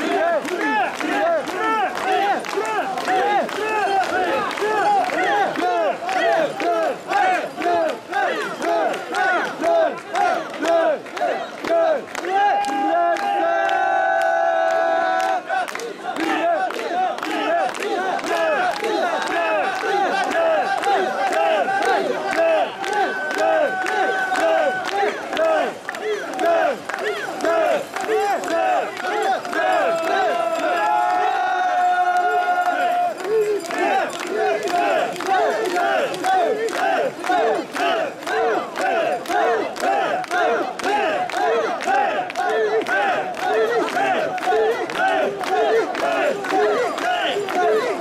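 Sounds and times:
crowd chanting rhythmic shouts: 0.0 - 48.0.

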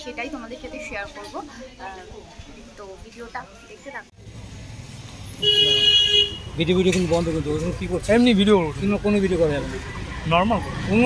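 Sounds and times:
street traffic rumble: 0.0 - 11.0
vehicle horn blaring: 5.4 - 6.6.

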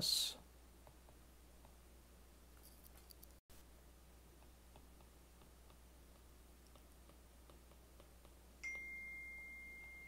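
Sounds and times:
stylus ticking on screen: 4.3 - 8.6
high pure ringing tone: 8.6 - 10.0.

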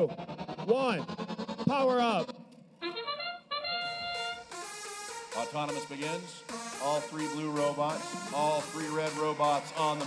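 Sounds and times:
short brass-like fanfare: 2.8 - 4.7.

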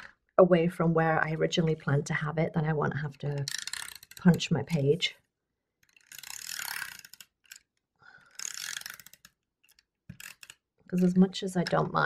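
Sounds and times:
tape runner gears whirring: 3.5 - 4.4, 5.8 - 11.1
small clicks: 5.8 - 11.8.

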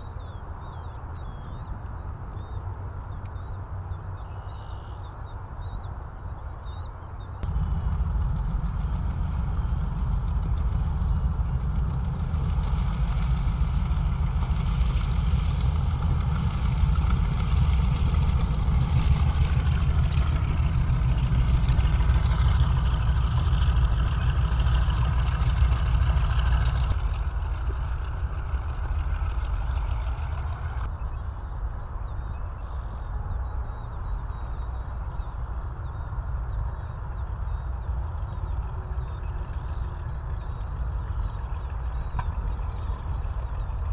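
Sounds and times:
propeller aircraft engines rumbling: 0.0 - 43.9.

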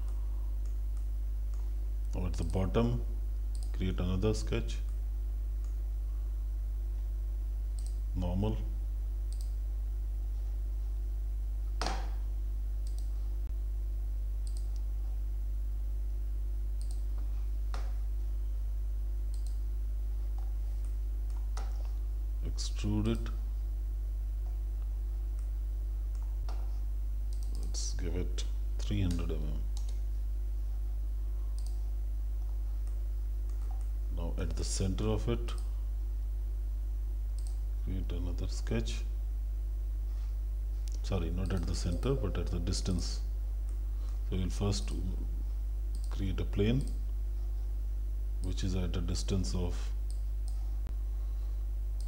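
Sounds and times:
low electrical hum: 0.0 - 52.0
computer mouse clicks: 3.5 - 3.8, 9.3 - 9.6, 12.8 - 13.1, 14.4 - 14.9, 16.8 - 17.1, 19.3 - 19.6, 27.3 - 27.8, 31.6 - 31.8, 37.4 - 37.6.

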